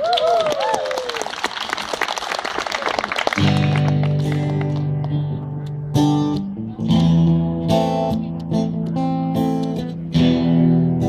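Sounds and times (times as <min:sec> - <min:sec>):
person whooping: 0:00.0 - 0:01.3
audience applauding: 0:00.0 - 0:04.8.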